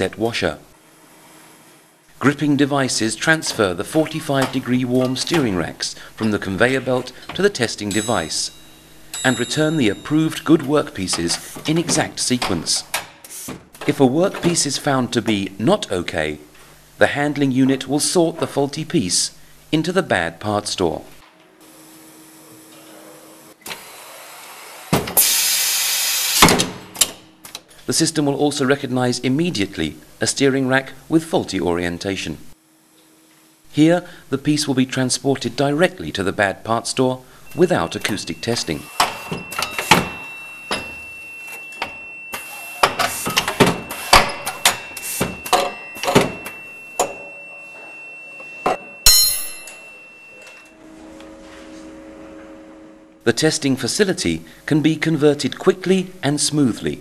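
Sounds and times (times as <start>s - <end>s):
faint steady high tone: 7.8s - 11.3s, 37.5s - 51.4s
loud high hiss: 24.6s - 26.5s
faint motor hum: 49.4s - 57.0s.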